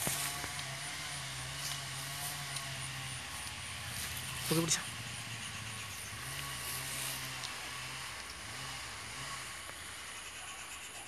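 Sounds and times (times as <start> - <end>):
engine running low hum: 0.0 - 11.0.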